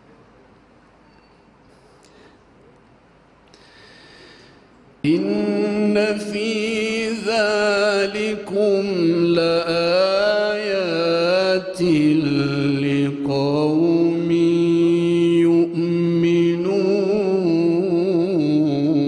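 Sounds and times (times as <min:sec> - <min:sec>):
man chanting melodically: 0:05.0 - 0:19.0.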